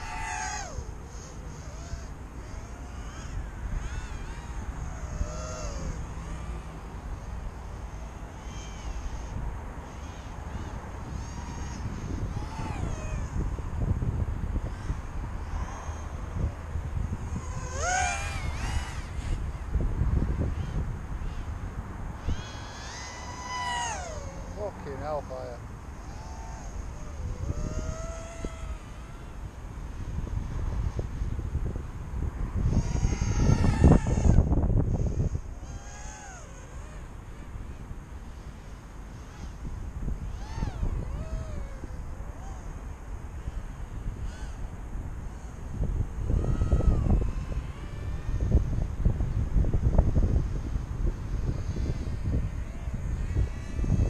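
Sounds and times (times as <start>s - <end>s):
drone motors whining: 0.0s - 54.0s
wind rumble on the microphone: 0.0s - 54.0s.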